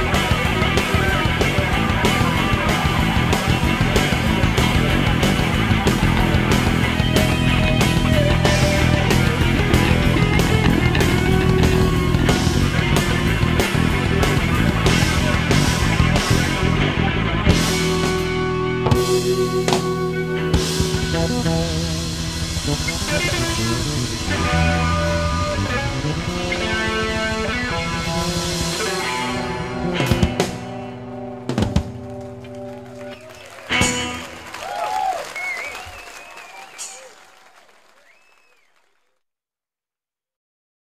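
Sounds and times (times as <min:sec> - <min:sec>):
drum strikes: 0:00.0 - 0:16.5
live jazz-rock band playing: 0:00.0 - 0:34.8
jazz band chord ringing out: 0:17.8 - 0:27.0
audience applauding and cheering: 0:31.9 - 0:39.2.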